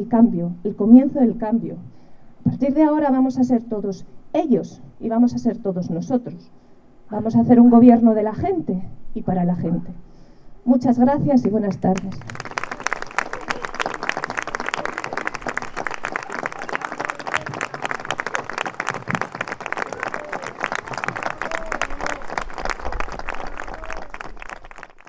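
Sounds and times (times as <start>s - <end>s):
audience clapping: 11.7s - 25.0s.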